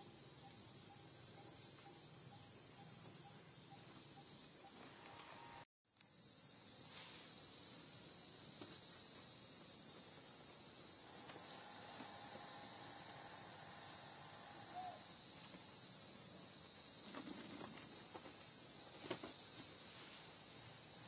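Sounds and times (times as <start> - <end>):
high-pitched insect chorus: 0.0 - 21.0.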